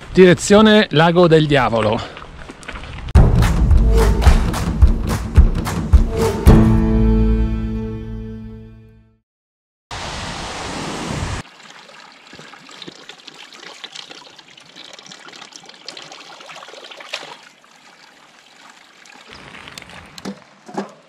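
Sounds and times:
water trickling into a trough: 0:11.4 - 0:20.6.

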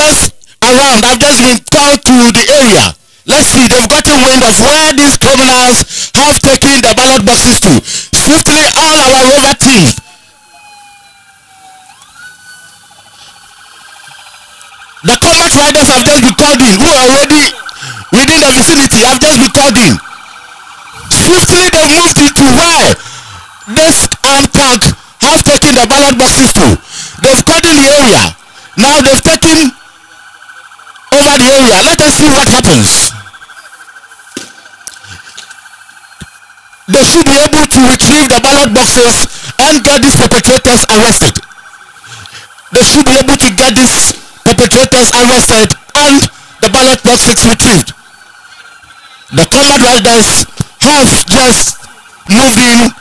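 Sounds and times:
narration voice: 0:00.0 - 0:10.2, 0:14.6 - 0:34.1, 0:36.8 - 0:48.2, 0:49.3 - 0:53.0
motorcycle engines idling: 0:00.0 - 0:53.0
police siren: 0:00.0 - 0:53.0
sharp clicks: 0:15.8 - 0:22.4, 0:33.8 - 0:37.0, 0:41.4 - 0:43.9.

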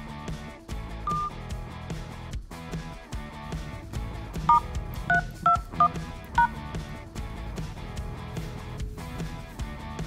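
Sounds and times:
background music with guitar: 0:00.0 - 0:10.0
keypad dialling tones: 0:01.1 - 0:01.4, 0:04.5 - 0:06.6.

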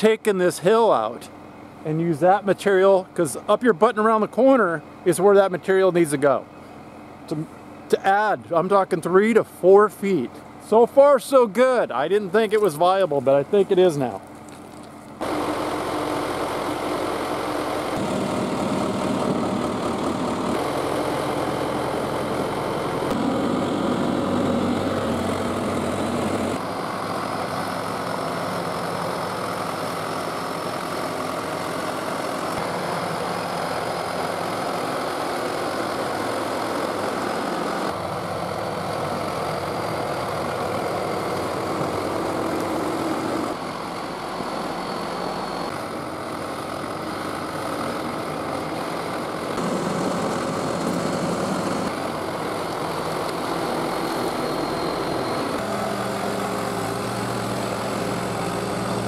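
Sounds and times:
bulldozer engine running: 0:00.0 - 0:59.0.

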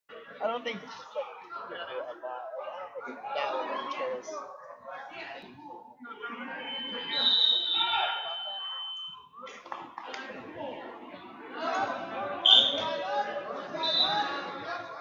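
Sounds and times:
spectators chattering: 0:00.1 - 0:15.0
high whistle-like tone: 0:06.4 - 0:09.4.

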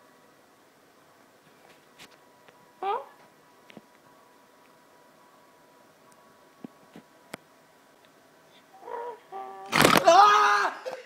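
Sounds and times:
loud jolt near microphone: 0:09.7 - 0:10.1.

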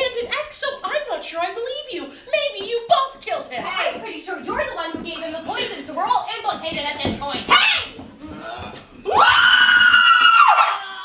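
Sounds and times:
woman screaming: 0:09.1 - 0:11.0.

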